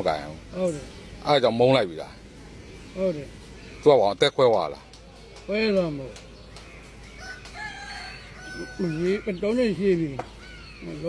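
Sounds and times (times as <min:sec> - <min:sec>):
rooster crowing: 0:07.1 - 0:09.5.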